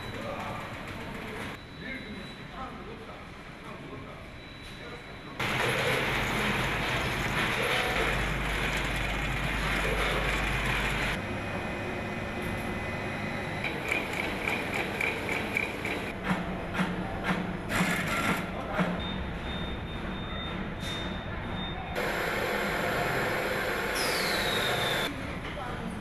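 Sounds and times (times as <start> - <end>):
factory machinery humming: 4.1 - 25.4.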